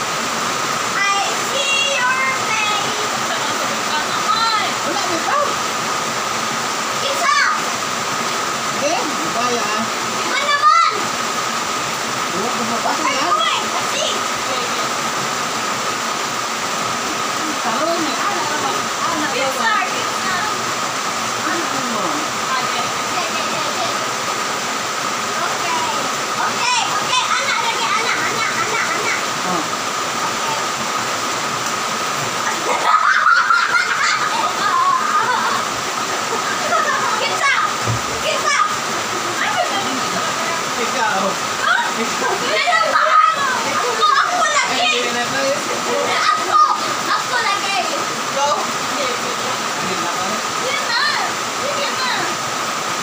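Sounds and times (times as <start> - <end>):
steady rushing hiss: 0.0 - 53.0
young women laughing and talking: 1.9 - 5.6, 25.4 - 29.4, 32.4 - 40.7, 41.6 - 45.1
faint voices: 25.0 - 31.3.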